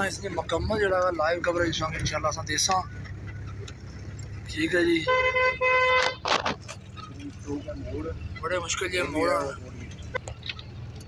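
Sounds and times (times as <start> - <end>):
car horn toots: 4.9 - 6.3.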